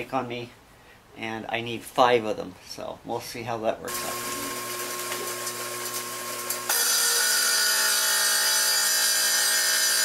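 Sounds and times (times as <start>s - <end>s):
power tool cutting tile: 3.9s - 10.0s.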